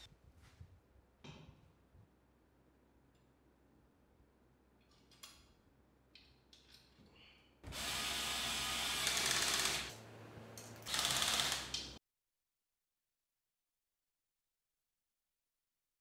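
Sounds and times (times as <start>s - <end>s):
cordless drill driving a bolt: 7.7s - 10.0s, 10.8s - 11.8s.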